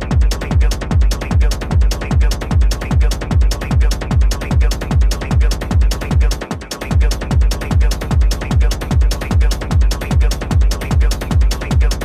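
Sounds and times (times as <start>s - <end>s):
hi-hats ticking: 0.0s - 12.0s
techno kick drum: 0.0s - 12.0s.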